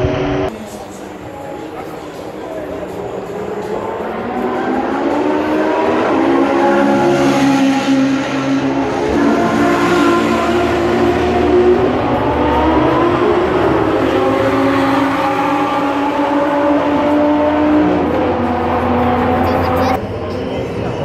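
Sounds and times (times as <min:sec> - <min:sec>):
sports car engines racing: 0:00.0 - 0:21.0.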